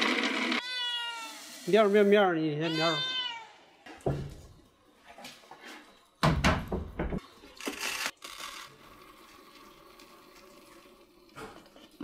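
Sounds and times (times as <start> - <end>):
cat meowing: 0.6 - 1.4, 2.7 - 3.7
wooden knocks and thumps: 3.9 - 4.6, 6.2 - 7.2.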